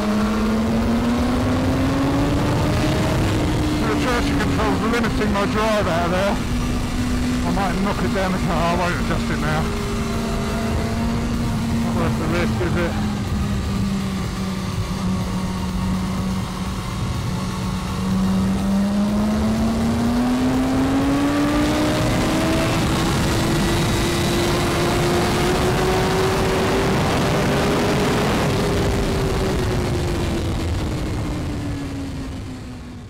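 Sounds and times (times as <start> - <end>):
motorcycle engine accelerating: 0.0 - 33.0.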